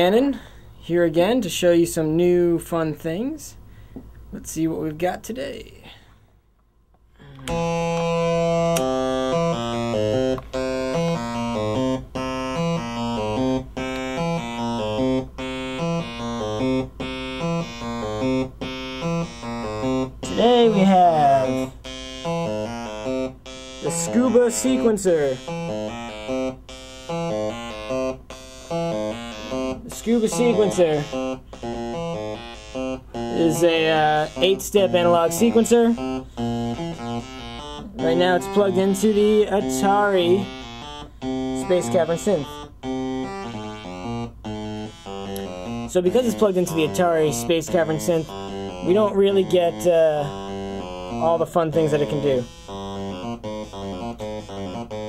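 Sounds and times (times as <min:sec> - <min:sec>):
buzzy electronic synth sequence: 0:07.4 - 0:55.0.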